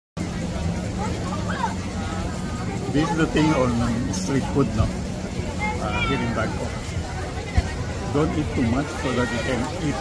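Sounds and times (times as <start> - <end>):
faint distant voices: 0.2 - 10.0.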